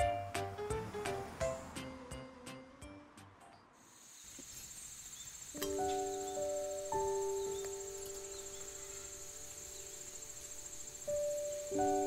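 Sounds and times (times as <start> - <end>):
insects trilling: 3.8 - 12.0.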